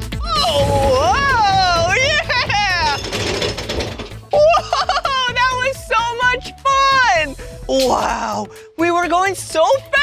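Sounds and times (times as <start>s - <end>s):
roller coaster rattling on track: 2.1s - 4.2s.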